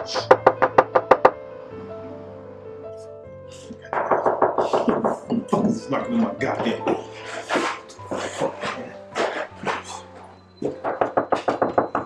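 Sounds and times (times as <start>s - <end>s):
rapid knocking on a door: 0.2s - 1.4s, 3.9s - 5.8s, 10.6s - 12.0s.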